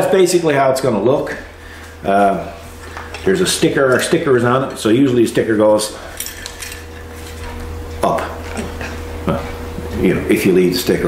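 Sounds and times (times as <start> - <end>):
steady low hum: 0.0 - 11.0
metallic clinks of hardware: 6.1 - 6.9.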